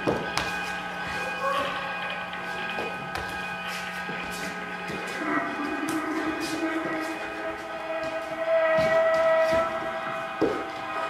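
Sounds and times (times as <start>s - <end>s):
drone of sustained tones: 1.0s - 11.0s.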